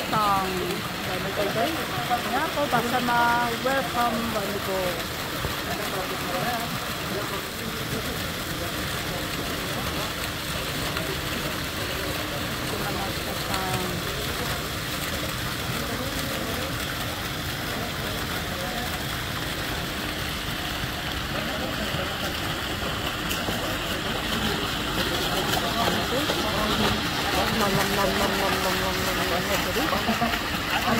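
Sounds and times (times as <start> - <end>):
fountain water splashing: 0.0 - 30.9.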